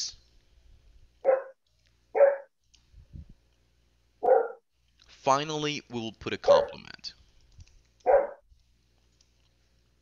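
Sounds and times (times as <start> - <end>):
dog barking: 1.2 - 1.6, 2.2 - 2.5, 4.2 - 4.6, 6.5 - 6.8, 8.0 - 8.4.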